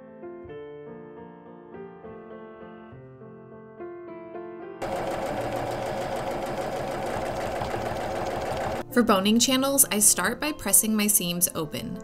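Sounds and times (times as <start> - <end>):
sewing machine stitching: 4.8 - 8.8.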